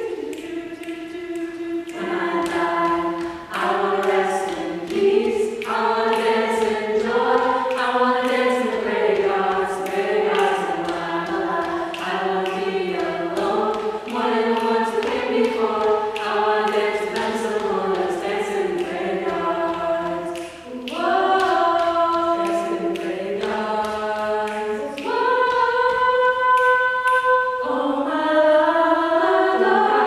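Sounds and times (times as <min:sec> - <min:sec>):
a cappella group singing harmony: 0:00.0 - 0:30.0.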